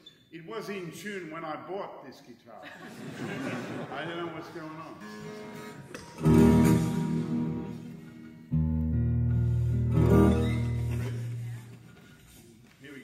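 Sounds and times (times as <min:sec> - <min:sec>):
acoustic guitar strummed: 0:05.0 - 0:12.0
low guitar strings struck: 0:06.0 - 0:11.8.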